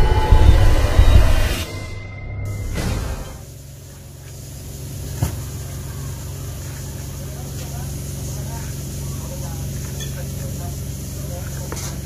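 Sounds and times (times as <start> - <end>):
steady low hum: 0.0 - 12.0
faint voices: 5.0 - 12.0.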